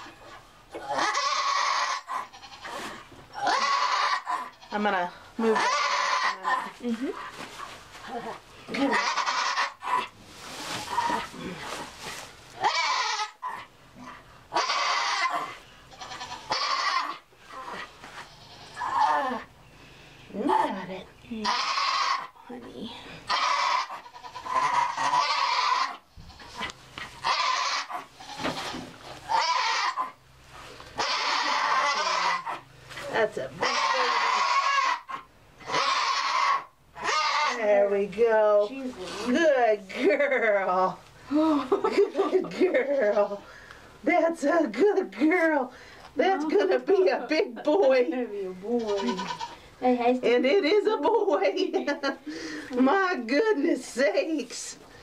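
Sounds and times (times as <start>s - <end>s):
goat crying out loudly: 0.8s - 4.7s, 5.6s - 6.6s, 8.8s - 10.0s, 12.6s - 13.6s, 14.5s - 17.2s, 21.4s - 22.3s, 23.3s - 30.2s, 31.0s - 32.6s, 33.6s - 37.6s, 48.9s - 49.6s.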